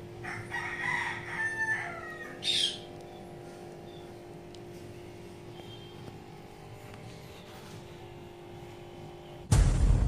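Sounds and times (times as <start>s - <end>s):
rooster crowing: 0.2s - 3.0s.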